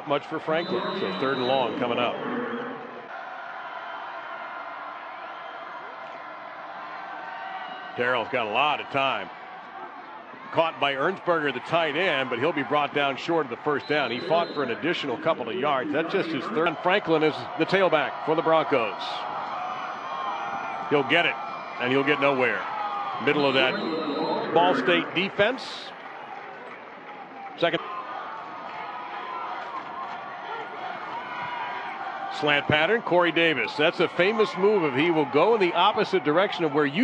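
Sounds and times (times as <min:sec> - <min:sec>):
stadium crowd din: 0:00.0 - 0:37.0.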